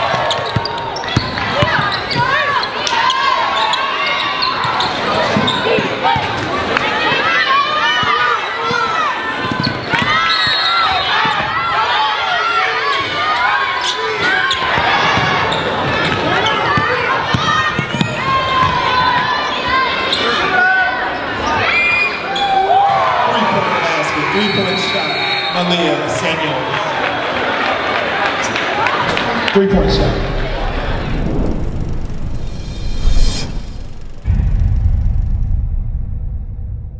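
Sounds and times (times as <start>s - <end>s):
voices in gym: 0.0s - 30.9s
sneakers squeaking on court: 0.1s - 2.9s, 3.6s - 6.4s, 9.4s - 10.7s
deep boom: 29.8s - 36.9s
whooshes: 30.4s - 36.9s.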